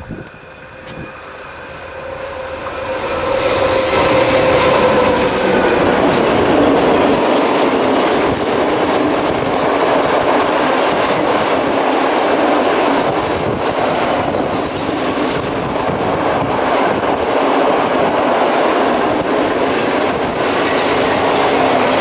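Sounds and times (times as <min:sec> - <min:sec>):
locomotive engine passing: 0:00.0 - 0:10.8
train wagons rumbling past: 0:00.0 - 0:22.0.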